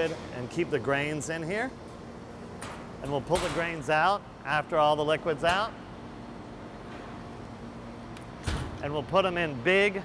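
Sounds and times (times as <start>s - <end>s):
low hum of brewery equipment: 0.0s - 10.0s.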